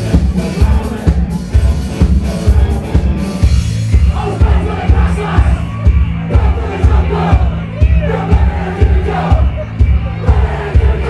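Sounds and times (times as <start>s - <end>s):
bass line: 0.0s - 11.0s
live band music: 0.0s - 11.0s
crowd shouting together: 4.1s - 11.0s.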